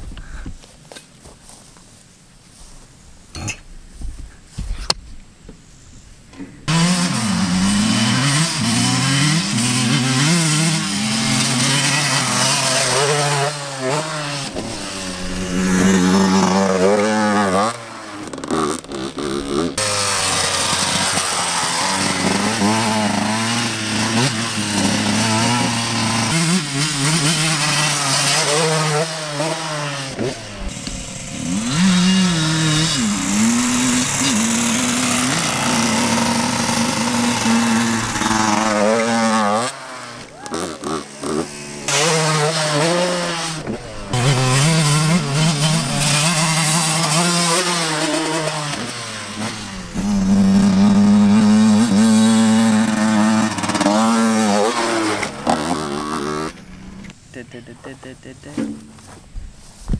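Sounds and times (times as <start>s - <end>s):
dirt bike engine revving: 6.7s - 59.1s.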